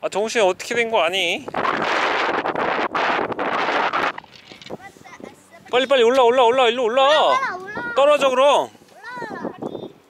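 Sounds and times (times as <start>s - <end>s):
wind buffeting microphone: 0.6s - 10.0s.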